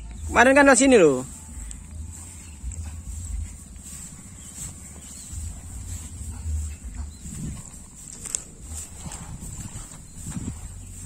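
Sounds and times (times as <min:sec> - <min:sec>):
soft footsteps on grass: 0:00.0 - 0:11.0
thin high-pitched hum: 0:00.0 - 0:11.0
wind rumbling on microphone: 0:00.0 - 0:11.0.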